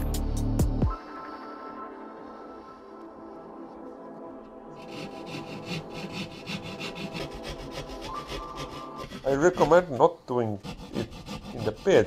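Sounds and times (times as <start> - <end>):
knife sawing through plasterboard: 4.8 - 12.0.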